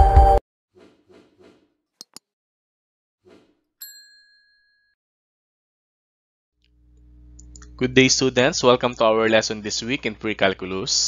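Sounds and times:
low hum: 6.7 - 10.4.

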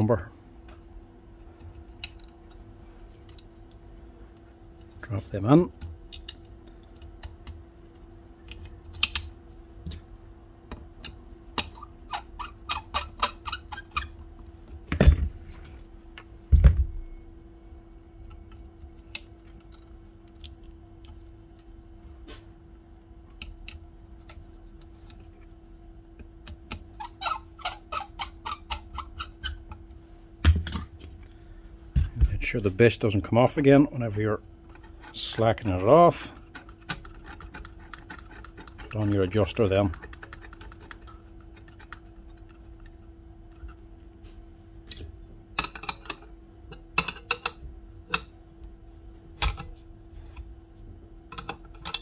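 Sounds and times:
faint steady hum: 0.0 - 52.0
small clicks and taps of parts: 1.6 - 3.8, 5.8 - 10.1, 18.3 - 22.2, 22.8 - 25.3, 45.6 - 48.3.

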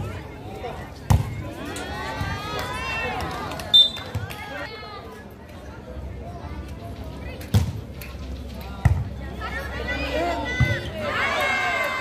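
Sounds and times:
players and spectators shouting: 9.4 - 12.0.

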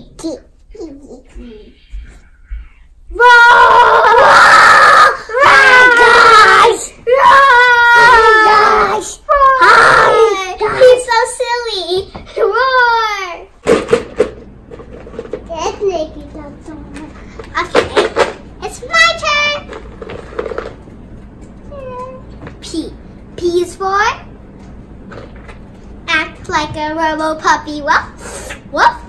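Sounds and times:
children mimicking a cat: 3.2 - 11.1.

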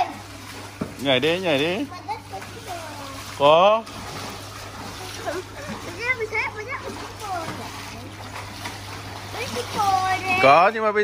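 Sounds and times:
water splashing: 0.0 - 11.0.

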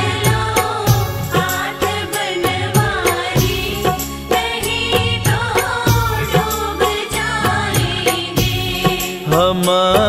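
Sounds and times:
devotional music: 0.0 - 10.0
percussion strikes: 0.0 - 10.0.

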